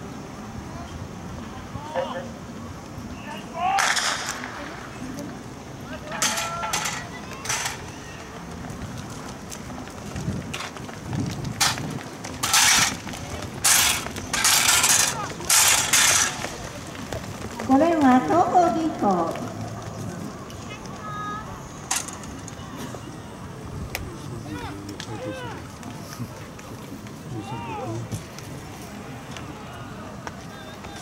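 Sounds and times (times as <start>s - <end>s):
spectators shouting and cheering: 27.2s - 31.0s.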